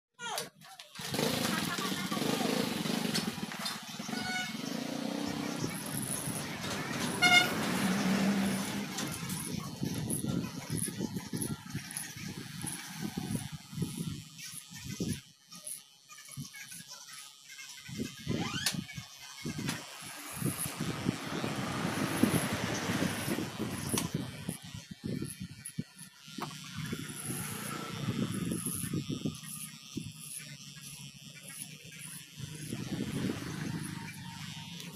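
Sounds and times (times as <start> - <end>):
passing traffic: 1.8 - 9.6, 20.4 - 24.2.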